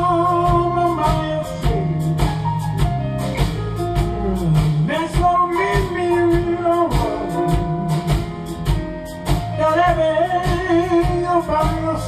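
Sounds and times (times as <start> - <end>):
man singing with vibrato: 0.0 - 2.2, 4.4 - 8.1, 9.6 - 12.0
blues band playing: 0.0 - 12.0.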